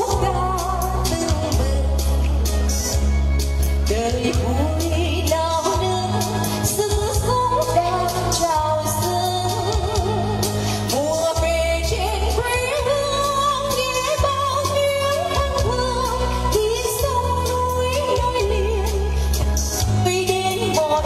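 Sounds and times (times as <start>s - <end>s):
amplified music with bass and percussion: 0.0s - 21.0s
woman singing into a microphone: 0.0s - 21.0s.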